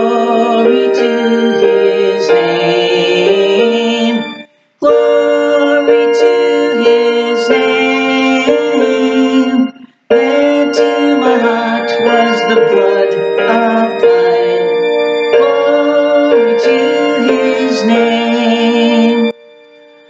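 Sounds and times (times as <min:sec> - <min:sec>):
people singing: 0:00.0 - 0:19.3
keyboard playing hymn chords: 0:00.0 - 0:20.0.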